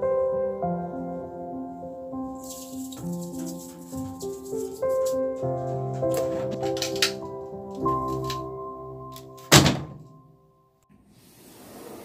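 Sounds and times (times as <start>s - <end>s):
soft background music: 0.0s - 9.5s
washing machine lid thunk: 9.5s - 10.0s.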